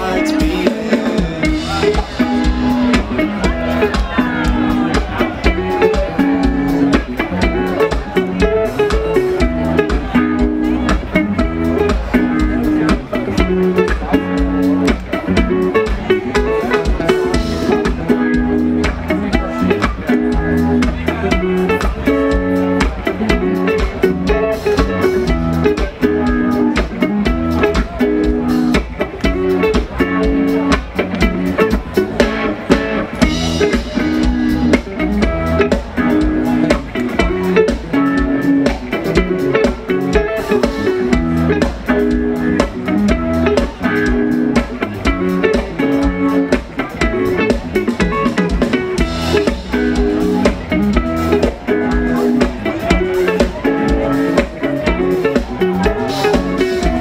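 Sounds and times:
bass guitar: 0:00.0 - 0:57.0
drum kit: 0:00.0 - 0:57.0
electric guitars: 0:00.0 - 0:57.0.

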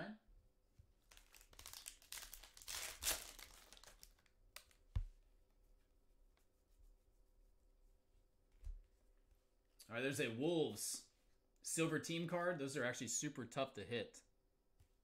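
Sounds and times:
foil wrapper tearing and crinkling: 0:01.1 - 0:04.8.

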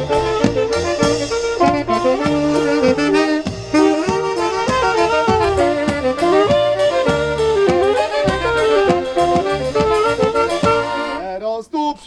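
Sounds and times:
band playing upbeat instrumental: 0:00.0 - 0:11.5.

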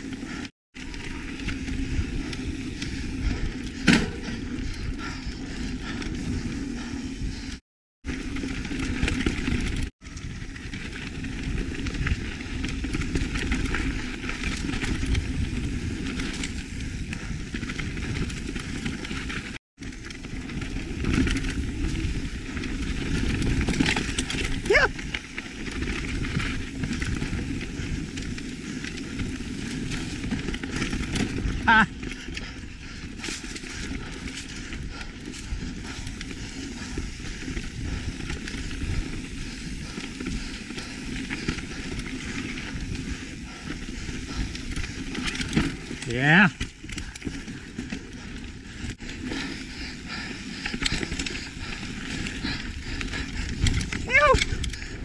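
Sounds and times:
bike tyre and trail noise: 0:00.0 - 0:55.0
low wind rumble: 0:00.0 - 0:55.0.

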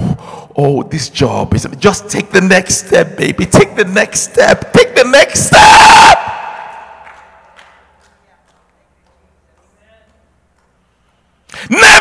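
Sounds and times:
man shouting through a microphone: 0:03.4 - 0:06.7, 0:11.6 - 0:12.0.

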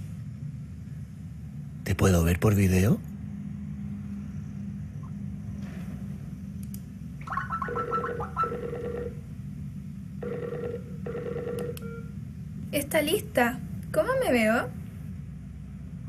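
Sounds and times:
video call ringtone: 0:07.3 - 0:09.2.

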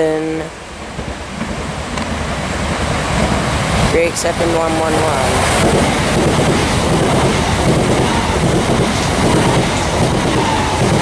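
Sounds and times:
train passing at speed: 0:00.0 - 0:11.0.

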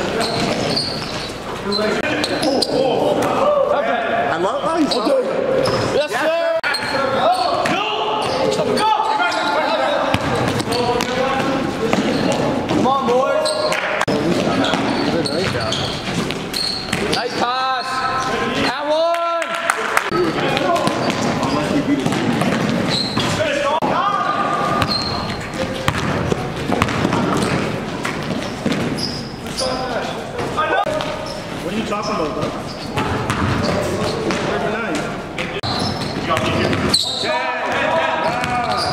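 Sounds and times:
sneaker squeaks: 0:00.0 - 0:03.2, 0:04.7 - 0:18.8, 0:20.2 - 0:38.9
players' voices: 0:00.0 - 0:38.9
basketball bouncing on hardwood: 0:25.8 - 0:29.0, 0:33.0 - 0:34.4.

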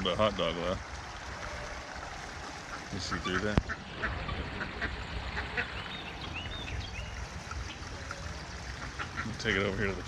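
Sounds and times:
birds chirping: 0:01.1 - 0:10.0.

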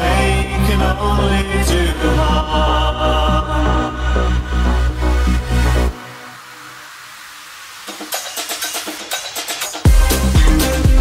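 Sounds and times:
steady hiss: 0:04.1 - 0:10.8
staccato percussive synth hits: 0:07.8 - 0:11.0.

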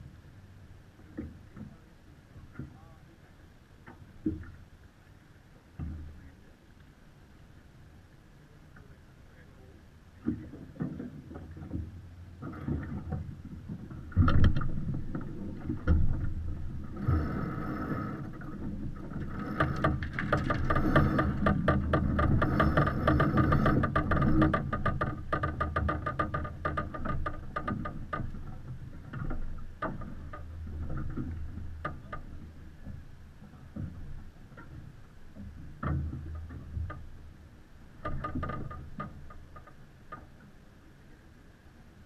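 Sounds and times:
wind and water rushing: 0:00.0 - 0:25.6
rope rasping through blocks: 0:19.2 - 0:27.4.

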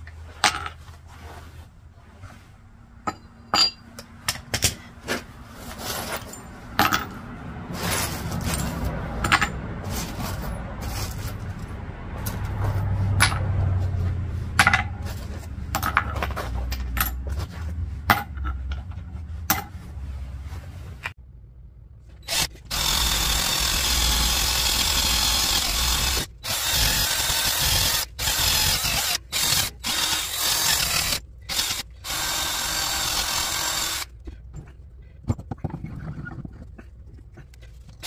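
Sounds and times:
drill spinning wire brush on metal: 0:22.2 - 0:34.1.

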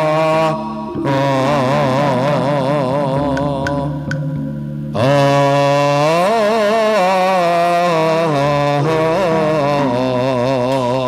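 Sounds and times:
sustained keyboard chord: 0:00.0 - 0:06.0
person singing ornamented melody: 0:00.0 - 0:11.0.

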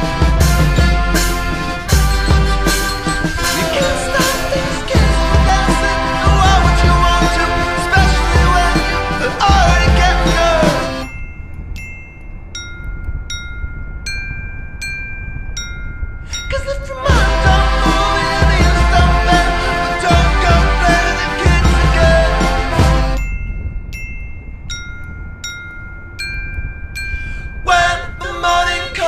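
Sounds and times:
glockenspiel notes: 0:00.0 - 0:29.0.

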